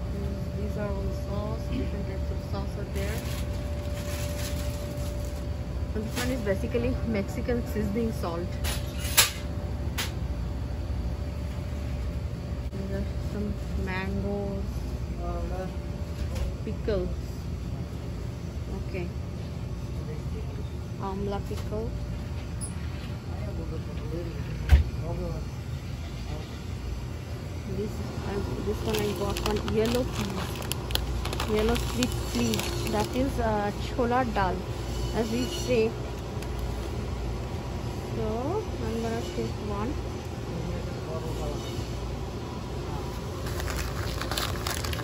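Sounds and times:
low background hum: 0.0 - 45.0
plastic bags crinkling: 2.9 - 6.5, 28.7 - 33.4, 43.3 - 45.0.

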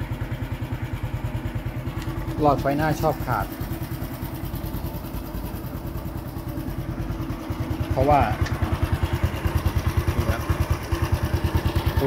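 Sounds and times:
motorcycle engine idling: 0.0 - 12.0.

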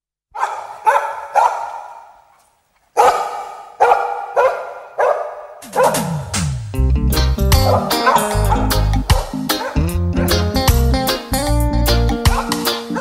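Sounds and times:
dog barking: 0.3 - 2.2, 3.0 - 6.1, 7.6 - 10.4, 12.3 - 13.0
reggae band playing: 5.6 - 13.0.

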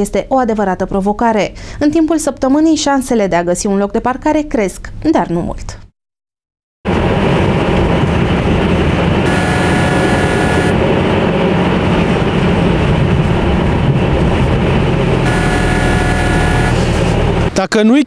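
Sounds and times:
engine and tyres rumbling: 6.9 - 17.6
steady tone: 9.2 - 11.0, 15.2 - 17.4.

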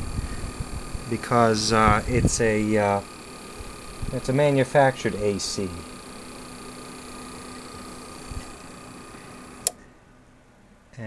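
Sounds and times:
cooling fan: 0.0 - 11.0
inverter hum with high whine: 0.0 - 11.0
relay click: 9.6 - 9.8.

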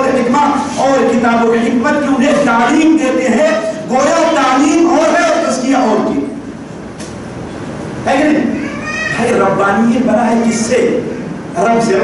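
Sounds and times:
low rumbling hall noise: 0.0 - 12.0.

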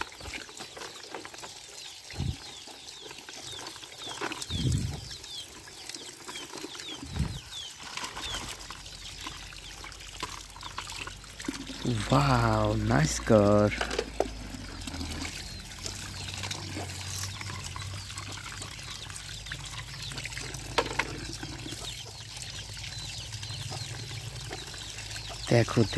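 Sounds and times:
water pouring into plastic basket: 0.0 - 25.9.

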